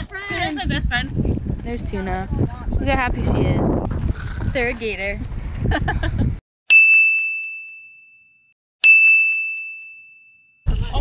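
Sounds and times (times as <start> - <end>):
wind on microphone: 0.0 - 6.4
bell-like dings: 6.7 - 10.7.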